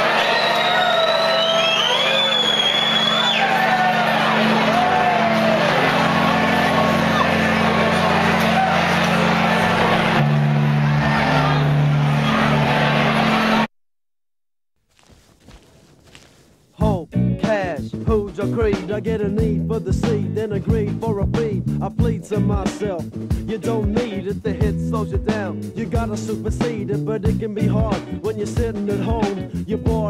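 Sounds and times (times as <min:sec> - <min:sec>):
crowd whoops and whistles: 0:00.0 - 0:13.7
crowd din: 0:02.5 - 0:13.7
band holding low bass notes: 0:16.8 - 0:30.0.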